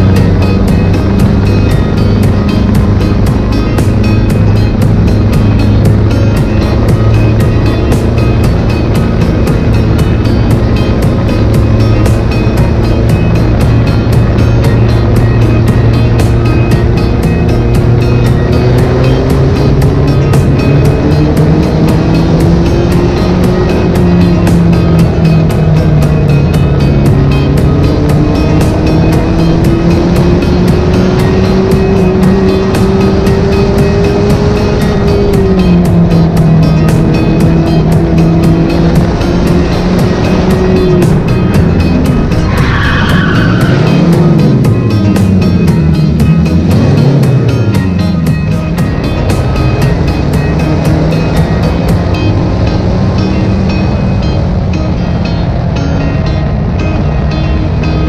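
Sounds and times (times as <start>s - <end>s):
race car engine: 0.0s - 58.0s
tyre squeal: 42.4s - 44.2s.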